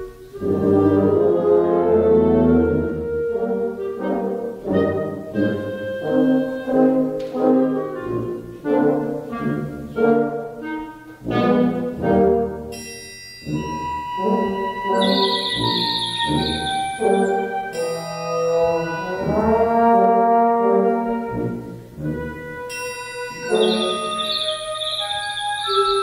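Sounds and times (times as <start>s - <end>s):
brass chords: 0.0s - 12.8s, 13.5s - 26.0s
wind ensemble playing a march: 0.0s - 12.8s, 13.4s - 26.0s
high sustained instrument notes: 12.8s - 20.2s, 22.7s - 26.0s.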